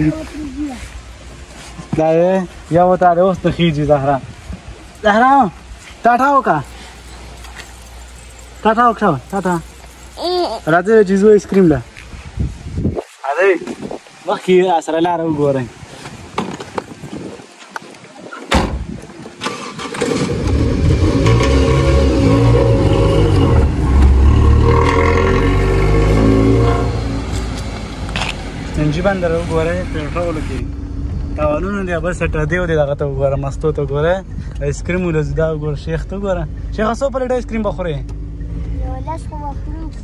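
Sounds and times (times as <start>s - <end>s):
road noise: 0.0s - 40.0s
car engine starting and revving: 19.4s - 39.9s.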